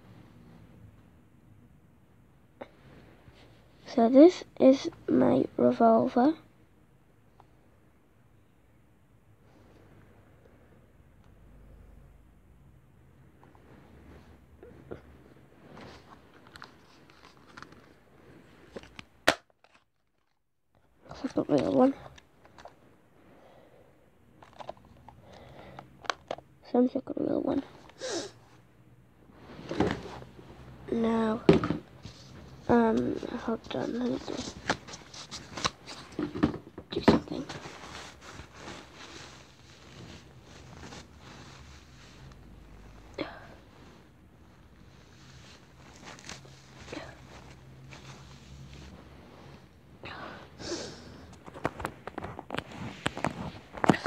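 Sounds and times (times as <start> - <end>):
soft rustling and scraping: 13.3 - 19.0, 27.5 - 50.0, 51.0 - 54.0.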